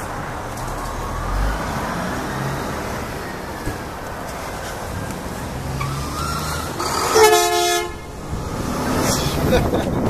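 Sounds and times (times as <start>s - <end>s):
road traffic noise: 0.0s - 10.0s
horn blast: 6.8s - 8.1s.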